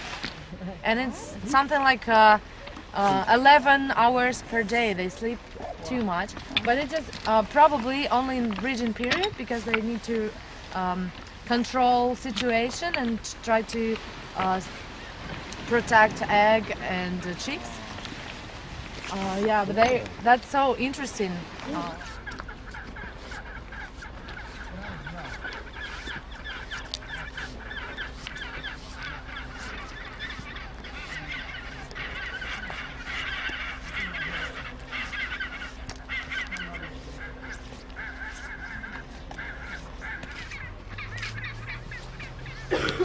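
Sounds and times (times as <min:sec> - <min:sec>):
penguin colony calling: 0:00.0 - 0:43.0.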